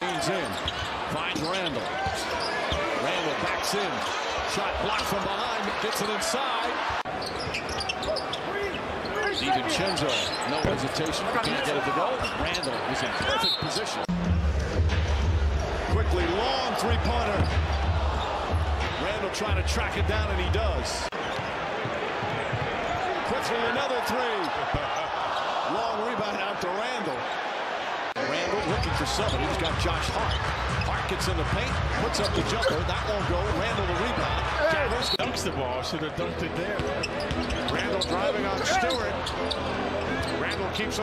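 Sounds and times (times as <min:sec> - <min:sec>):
arena crowd noise: 0:00.0 - 0:41.0
shoe squeaks: 0:07.1 - 0:14.0, 0:32.2 - 0:32.8, 0:36.8 - 0:40.8.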